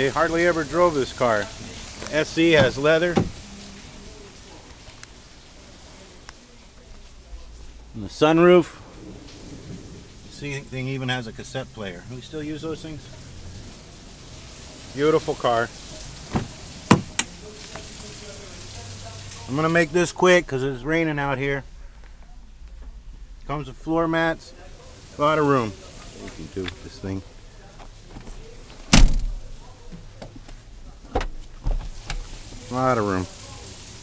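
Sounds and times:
car door handle and latch clunks: 0:02.6 - 0:03.4, 0:16.3 - 0:17.3, 0:28.9 - 0:29.4, 0:31.1 - 0:32.2.

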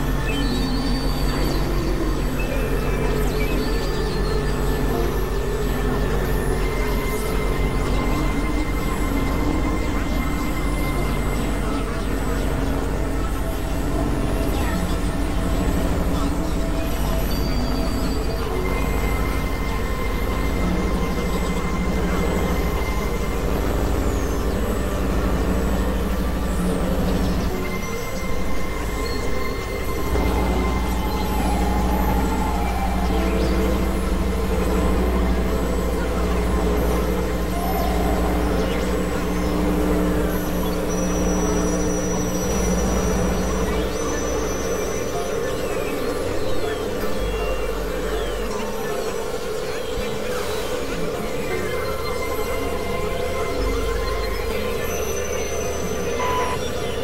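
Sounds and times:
heavy low drone: 0:00.0 - 0:57.0
noisy wash: 0:00.0 - 0:57.0
sustained synthesizer tones: 0:00.0 - 0:57.0.

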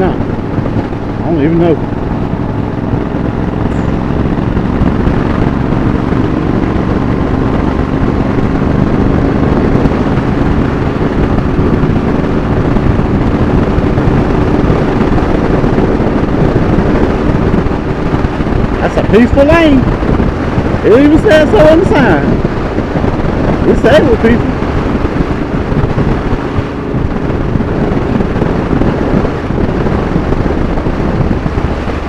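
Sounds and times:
motorcycle engine running: 0:00.0 - 0:32.0
wind rush on microphone: 0:00.0 - 0:32.0.

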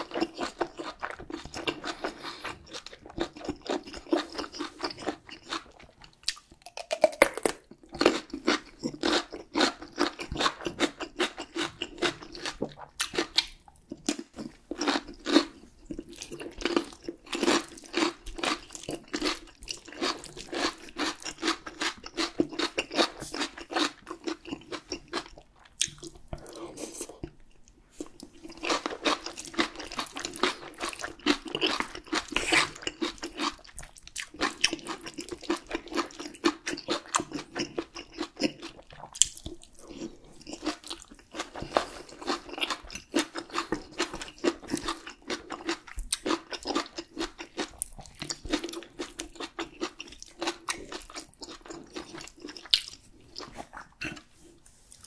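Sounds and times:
close chewing clicks and smacks: 0:15.8 - 0:26.3, 0:27.2 - 0:54.2.

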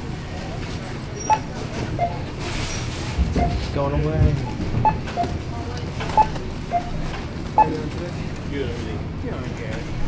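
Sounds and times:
store hum: 0:00.0 - 0:10.0
barcode scanner beeping: 0:04.4 - 0:05.4, 0:06.1 - 0:07.9.

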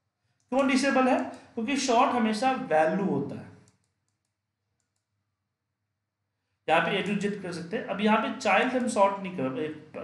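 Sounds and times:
computer mouse clicks: 0:03.6 - 0:05.2.

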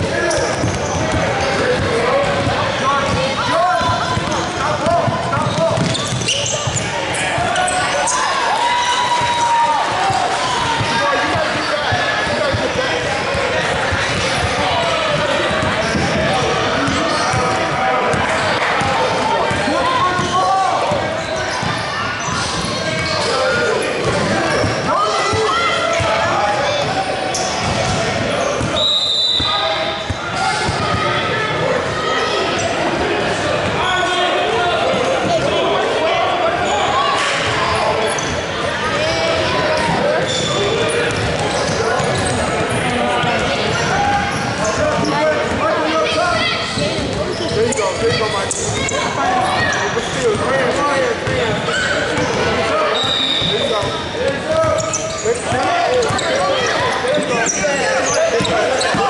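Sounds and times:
voices of players and spectators: 0:00.0 - 0:59.0
basketball bouncing on wooden floor: 0:05.1 - 0:06.8.

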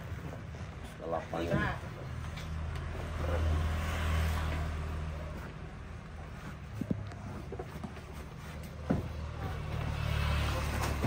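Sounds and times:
motor vehicle passing: 0:02.1 - 0:11.0.

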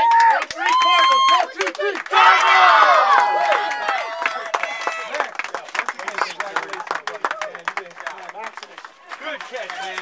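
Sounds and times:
boys shouting a cheer: 0:00.0 - 0:05.2.

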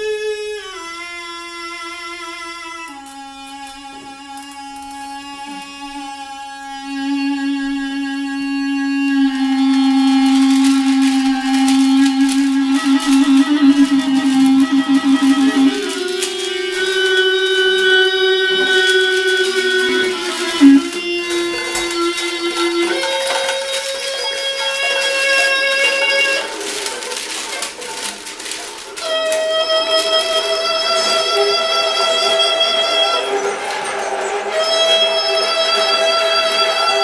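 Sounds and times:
wind instrument long tones: 0:00.0 - 0:37.0
percussion scraping and rattling: 0:02.9 - 0:37.0.

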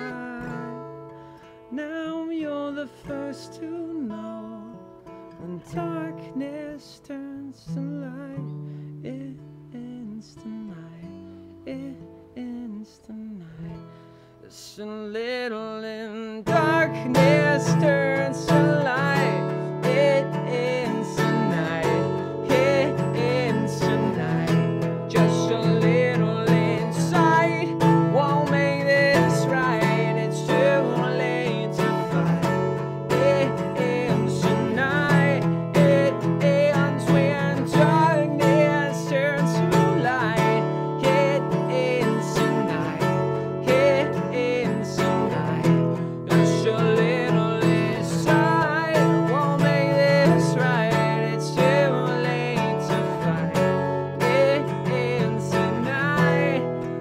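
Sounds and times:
acoustic guitar strumming: 0:00.0 - 0:57.0
man singing: 0:00.0 - 0:57.0.

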